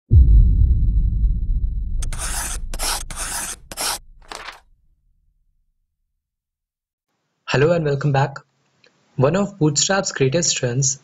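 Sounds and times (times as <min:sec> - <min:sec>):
low rumble: 0:00.1 - 0:04.3
scratchy drawing strokes: 0:02.0 - 0:04.7.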